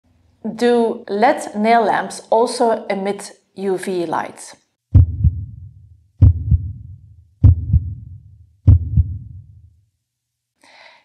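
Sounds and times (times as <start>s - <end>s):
deep heartbeat-like thuds: 4.9s - 9.6s
low rumble: 5.0s - 9.5s.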